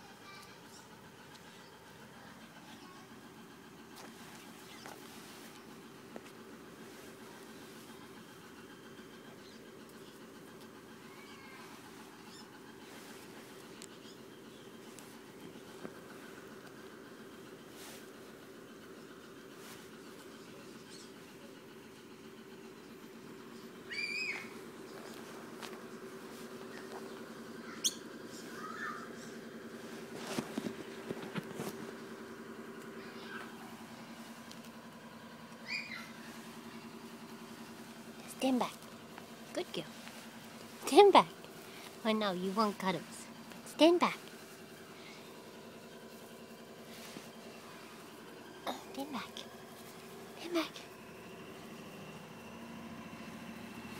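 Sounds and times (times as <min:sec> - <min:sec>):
low steady hum: 0:00.0 - 0:53.9
faint squeaks: 0:10.8 - 0:15.6
puppy squeaking: 0:35.6 - 0:36.2.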